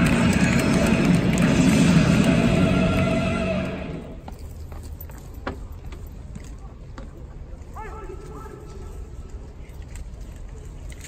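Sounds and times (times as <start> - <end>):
stadium crowd hum: 0.0 - 4.4.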